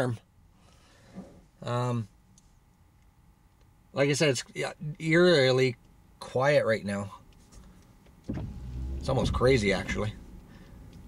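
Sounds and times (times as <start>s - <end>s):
windshield wiper motor humming: 8.3s - 11.0s.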